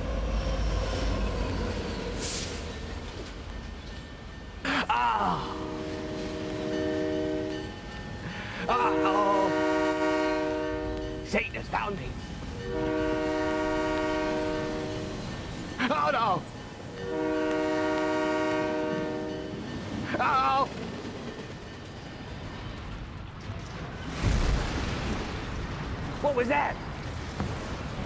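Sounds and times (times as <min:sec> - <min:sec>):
train horn chord: 0:05.6 - 0:07.7, 0:08.6 - 0:11.3, 0:12.6 - 0:15.3, 0:16.9 - 0:19.6.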